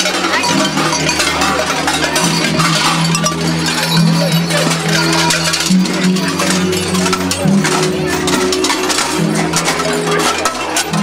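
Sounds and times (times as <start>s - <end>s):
costume bells clanging and jingling: 0.0s - 11.0s
music with low drone: 0.0s - 11.0s.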